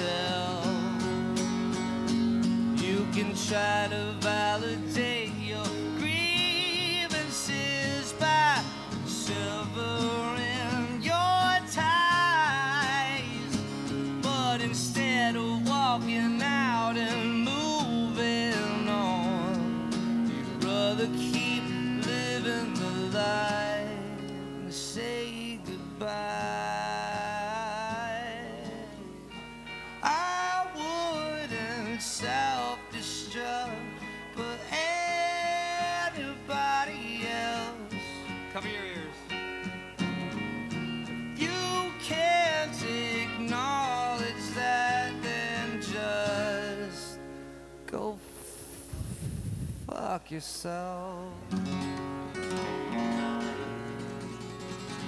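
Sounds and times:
man singing: 0.0 - 29.4, 30.0 - 39.4, 41.4 - 48.7, 49.9 - 52.0
electric guitar: 0.0 - 50.1, 50.7 - 55.0
strummed acoustic guitar: 0.0 - 55.0.

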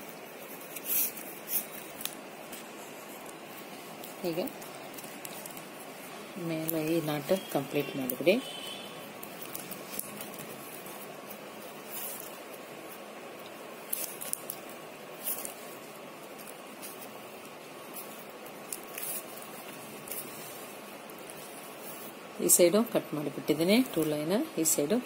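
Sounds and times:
steady hiss: 0.0 - 25.0.

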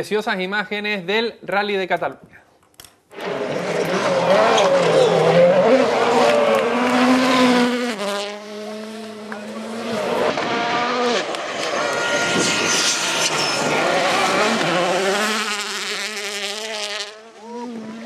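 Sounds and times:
rally car engines revving: 3.1 - 18.0.

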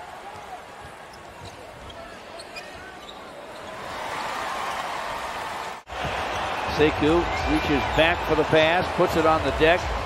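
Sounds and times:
arena crowd noise: 0.0 - 10.0
sneaker squeaks: 0.8 - 3.9.

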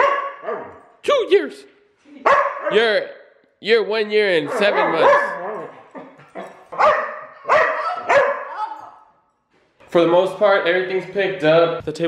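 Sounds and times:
dog barking: 0.0 - 0.8, 2.2 - 2.9, 4.4 - 9.0.

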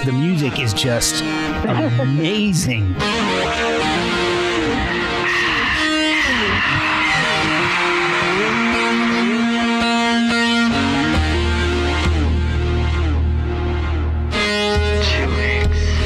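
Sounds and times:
electric guitar sliding notes: 0.0 - 16.0.

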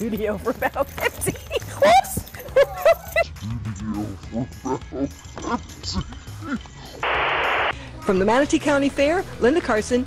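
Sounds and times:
woman laughing: 1.1 - 3.4
lower laughing voices: 1.6 - 5.1.

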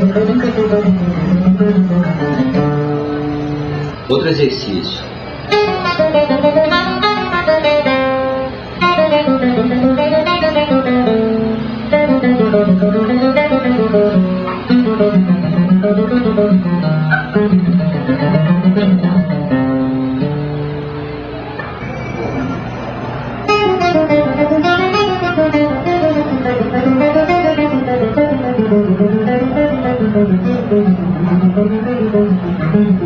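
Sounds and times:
guitar playing fast runs: 0.0 - 4.1, 5.2 - 21.8, 22.6 - 33.0.

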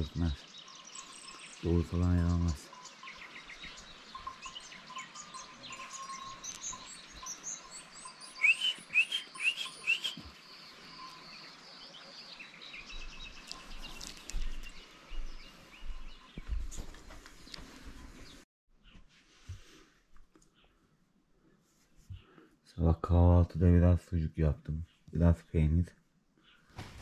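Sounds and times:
songbirds chirping and singing: 0.0 - 19.0.

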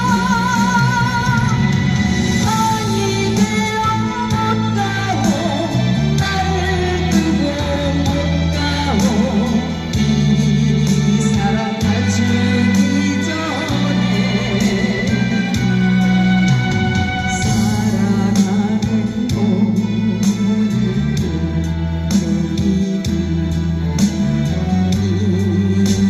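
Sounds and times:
amplified instrumental accompaniment: 0.0 - 26.0
woman singing into a microphone: 0.0 - 26.0.

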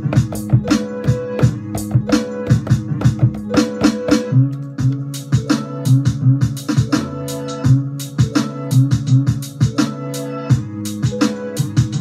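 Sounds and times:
hip-hop drum hits: 0.0 - 5.5.

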